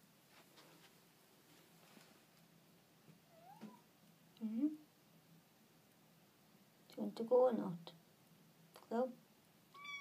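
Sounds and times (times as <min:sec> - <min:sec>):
cat meowing quietly: 0:03.3 - 0:03.9, 0:09.7 - 0:10.0.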